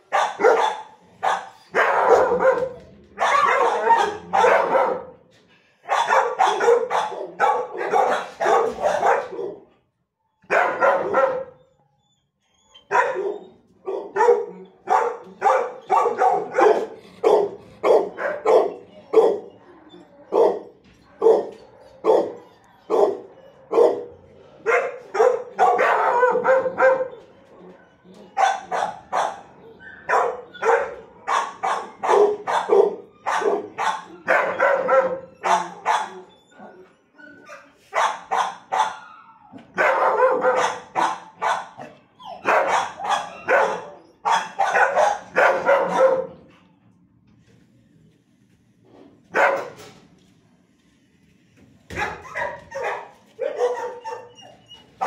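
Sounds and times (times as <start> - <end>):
dogs barking: 0.0 - 9.8, 10.4 - 11.8, 12.8 - 36.4, 37.5 - 46.5, 49.3 - 49.8, 51.9 - 54.8.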